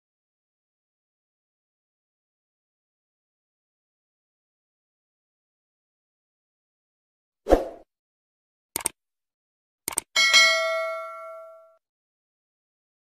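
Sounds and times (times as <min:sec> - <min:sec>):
quick double clicks: 0:08.8 - 0:09.0, 0:09.9 - 0:10.1
bell-like ding: 0:10.2 - 0:11.8.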